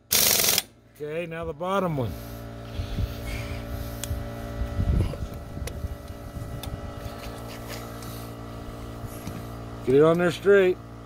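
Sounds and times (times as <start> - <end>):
mechanical hum: 0.0 - 11.0.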